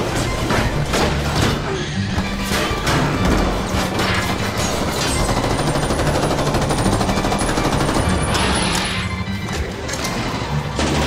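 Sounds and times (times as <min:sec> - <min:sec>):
dramatic music: 0:00.0 - 0:11.0.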